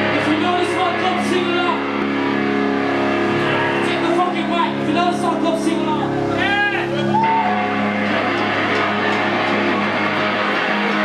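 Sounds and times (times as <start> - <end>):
distorted electric guitars and bass: 0.0 - 11.0.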